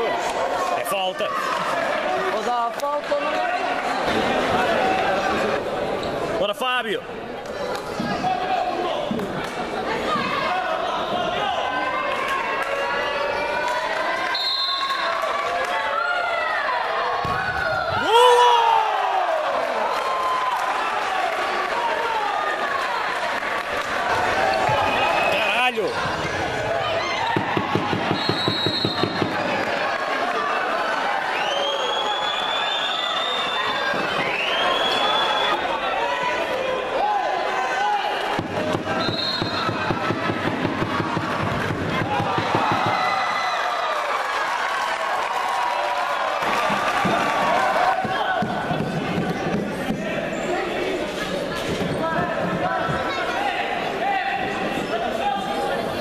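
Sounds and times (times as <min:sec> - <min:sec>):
people shouting in a sports hall: 0:00.0 - 0:56.0
short high whistle blasts: 0:14.4 - 0:15.0, 0:28.2 - 0:29.1, 0:38.9 - 0:39.7.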